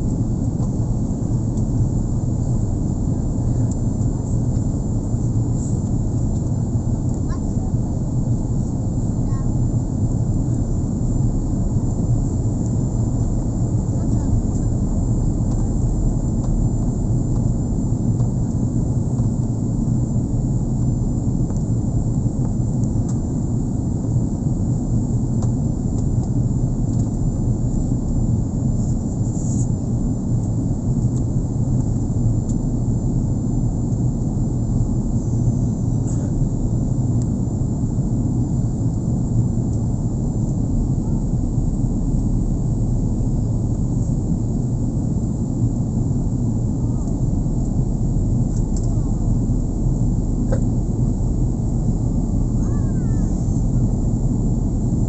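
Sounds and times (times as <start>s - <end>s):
airliner cabin engine rumble: 0.0s - 55.0s.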